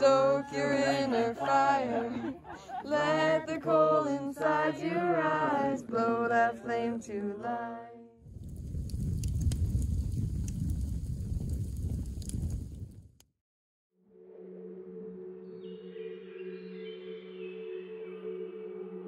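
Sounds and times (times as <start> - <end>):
grass fire rushing and crackling: 8.2 - 13.2
ambient music of ringing tones: 14.0 - 19.0.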